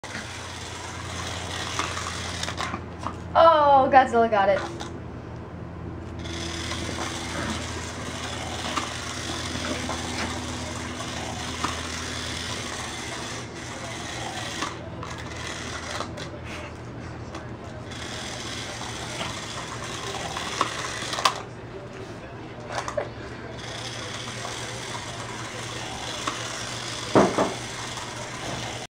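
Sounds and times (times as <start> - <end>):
slot car motors whirring: 0.0 - 28.9
slot cars clicking and knocking: 17.4 - 21.5, 23.6 - 28.8.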